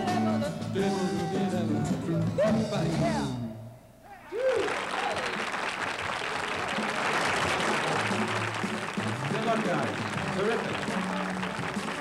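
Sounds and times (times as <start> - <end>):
shouted cheers: 4.1 - 5.5
audience applause: 4.4 - 12.0.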